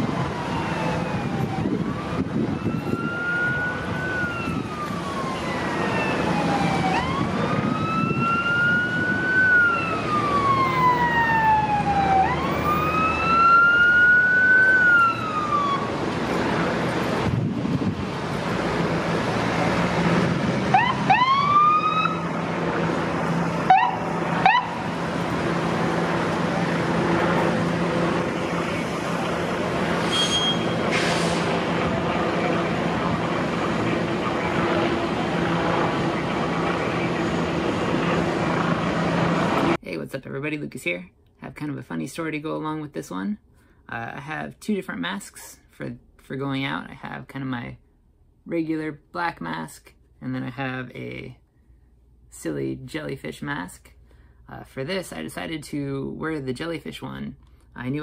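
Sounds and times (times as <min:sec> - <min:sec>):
siren rising whoops: 0:00.0 - 0:16.0, 0:20.6 - 0:22.4, 0:23.6 - 0:25.0
ambulance siren wailing: 0:00.0 - 0:17.2, 0:18.8 - 0:39.8
road traffic: 0:00.0 - 0:58.0.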